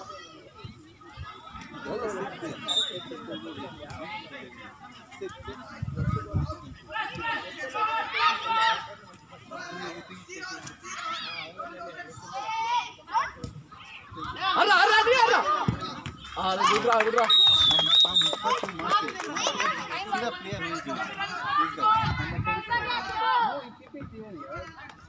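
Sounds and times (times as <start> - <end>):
children and people shouting and chattering: 0.0 - 25.0.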